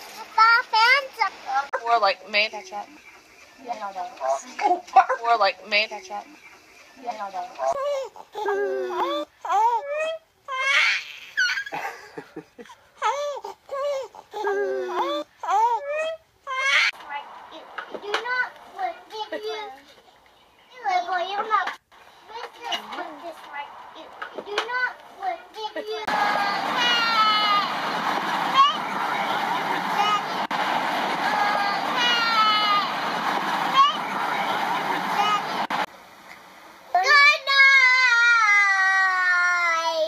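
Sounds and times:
young children talking and playing: 0.0s - 12.2s, 13.1s - 35.9s, 36.8s - 40.0s
wind and road noise of car: 17.0s - 38.6s.

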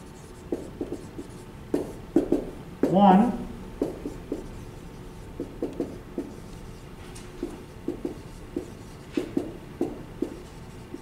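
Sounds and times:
marker squeaking on whiteboard: 0.0s - 3.0s, 3.8s - 11.0s.

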